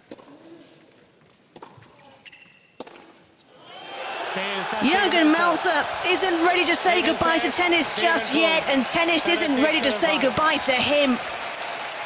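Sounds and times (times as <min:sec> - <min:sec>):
shoe squeak on court: 0:01.6 - 0:03.5
crowd noise: 0:03.6 - 0:12.0.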